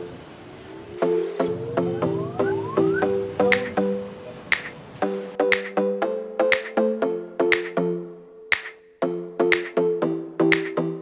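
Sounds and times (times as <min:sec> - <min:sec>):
plucked guitar-like melody: 0:01.0 - 0:04.6
finger snaps: 0:03.5 - 0:03.7, 0:05.5 - 0:05.8, 0:06.5 - 0:06.8, 0:07.5 - 0:07.8, 0:08.5 - 0:08.8, 0:09.5 - 0:09.8, 0:10.5 - 0:10.8.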